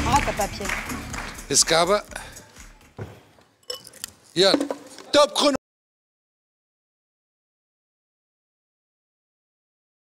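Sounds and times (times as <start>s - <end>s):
man speaking: 4.4s - 5.6s.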